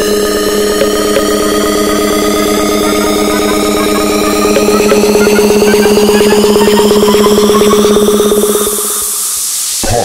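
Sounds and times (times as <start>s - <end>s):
buzzing synth pulse: 0.0s - 9.2s
repeating synth blips: 0.5s - 9.1s
white noise hiss: 6.0s - 10.0s.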